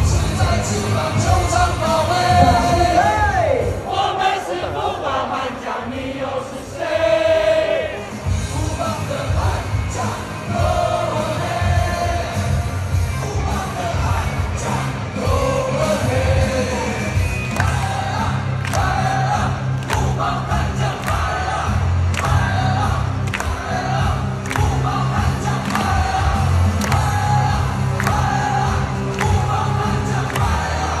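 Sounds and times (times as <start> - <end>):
crowd chanting: 0.0 - 31.0
stadium music over loudspeakers: 0.0 - 31.0.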